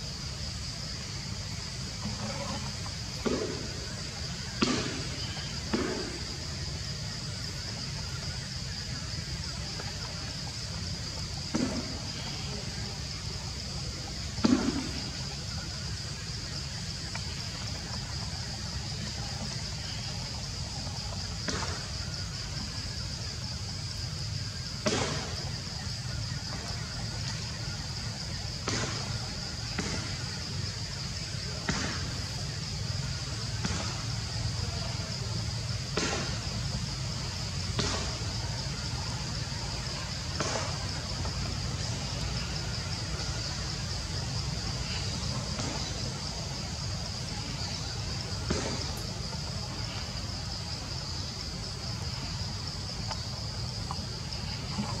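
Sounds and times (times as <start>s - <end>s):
forest insects droning: 0.0s - 55.0s.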